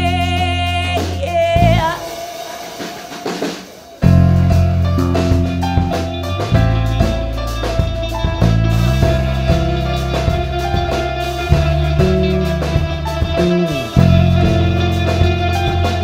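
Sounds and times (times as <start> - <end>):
live art-pop band playing: 0.0 - 16.0
electric guitar picking notes: 4.0 - 16.0.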